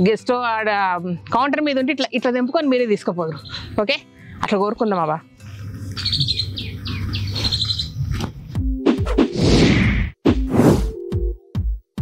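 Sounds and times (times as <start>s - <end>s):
small birds chirping: 3.3s - 4.4s, 5.5s - 8.2s.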